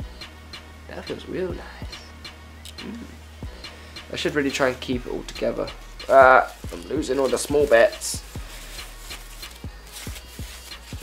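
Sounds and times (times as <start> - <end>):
plastic wrap rustling and crinkling: 4.2 - 11.0.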